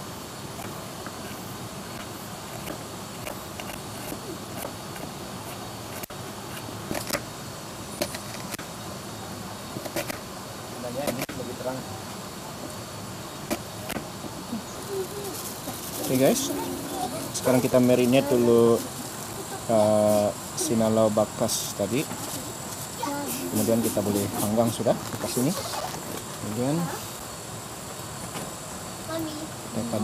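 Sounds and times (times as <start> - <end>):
steady background hiss: 0.0 - 30.0.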